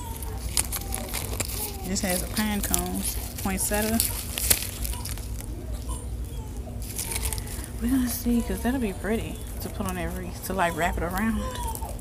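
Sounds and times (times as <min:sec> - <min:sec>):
low store background: 0:00.0 - 0:12.0
plastic sleeve crinkling: 0:00.0 - 0:12.0.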